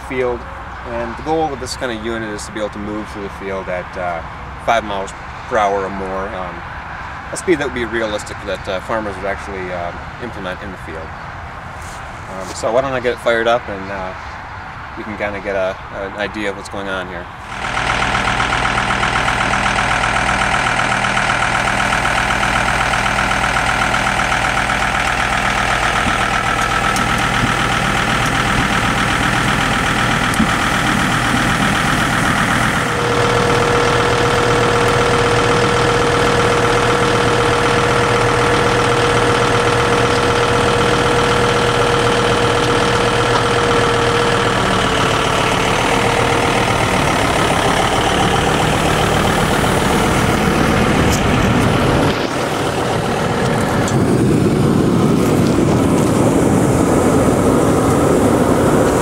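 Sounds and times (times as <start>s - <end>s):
tractor engine running: 0.0s - 59.0s
steady whine: 15.0s - 59.0s.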